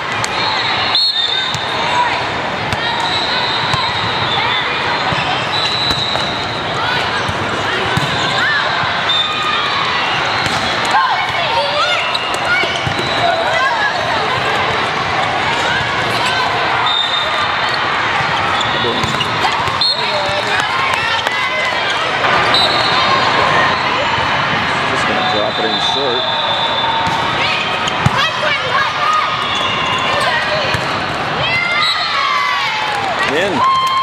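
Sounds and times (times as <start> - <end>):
sneakers squeaking on court: 2.7 - 8.5, 10.2 - 13.7, 17.0 - 23.1, 26.9 - 28.6
volleyballs struck and bouncing: 5.0 - 8.5, 10.2 - 13.6, 18.2 - 22.4, 27.0 - 28.7.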